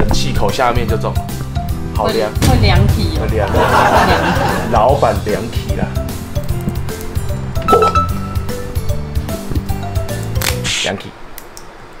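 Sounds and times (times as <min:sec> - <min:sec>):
background music with beat: 0:01.2 - 0:10.5.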